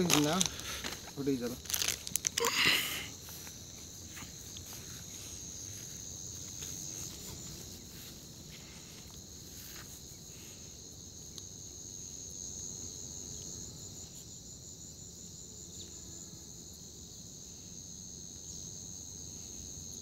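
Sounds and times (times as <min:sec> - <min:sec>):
insects chirring: 0:00.0 - 0:20.0.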